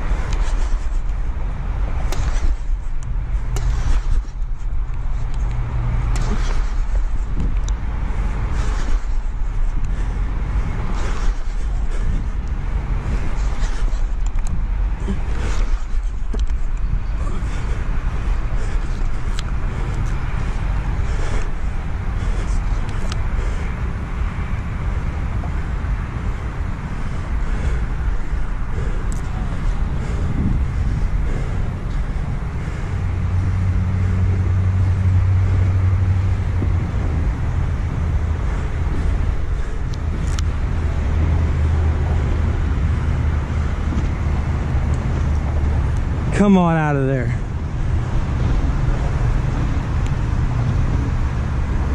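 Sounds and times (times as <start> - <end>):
outdoor rumble: 0.0 - 51.9
vehicle engine hum: 0.0 - 51.9.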